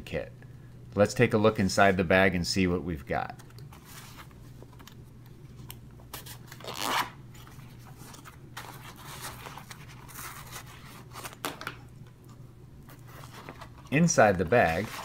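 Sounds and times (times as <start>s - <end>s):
zipper pulled open: 6.6s - 7.1s.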